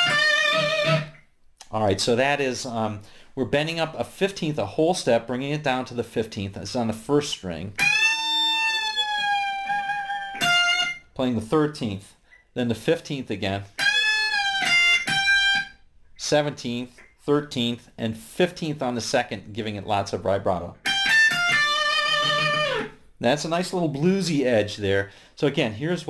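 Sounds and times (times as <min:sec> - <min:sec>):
electric guitar note bending: 0:00.0 - 0:01.2, 0:07.8 - 0:11.0, 0:20.8 - 0:23.0.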